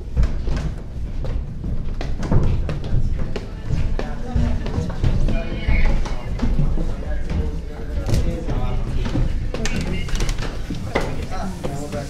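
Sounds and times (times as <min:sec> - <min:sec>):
footsteps on wooden staircase: 0:00.0 - 0:12.0
voices in background: 0:02.6 - 0:12.0.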